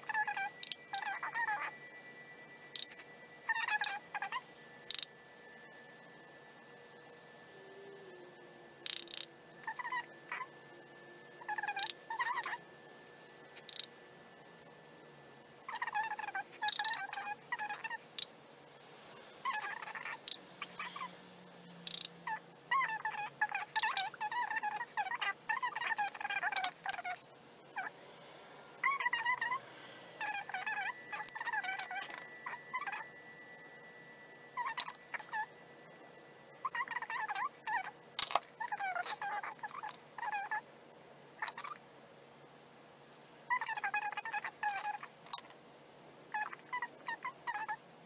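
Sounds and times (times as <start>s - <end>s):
small animal squeaky chirping: 0.0s - 6.3s, 8.8s - 12.7s, 13.5s - 14.0s, 15.6s - 18.3s, 19.4s - 21.2s, 21.8s - 28.1s, 28.8s - 40.7s, 41.4s - 41.8s, 43.5s - 45.5s, 46.3s - 47.8s
faint steady hum: 0.0s - 48.0s.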